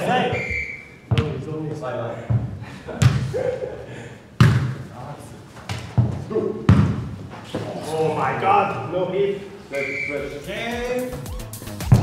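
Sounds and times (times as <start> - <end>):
football thudding on hard floor: 1.1 - 1.4, 5.7 - 7.1.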